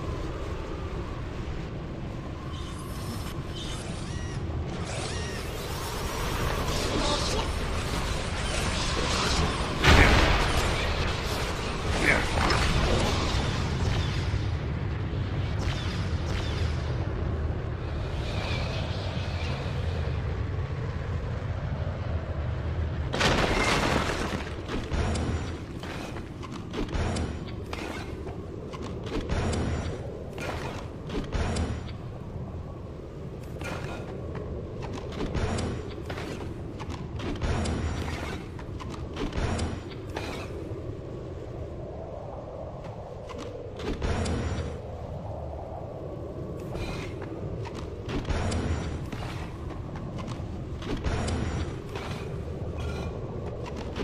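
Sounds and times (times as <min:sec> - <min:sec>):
steady low rumble: 0:00.0 - 0:54.0.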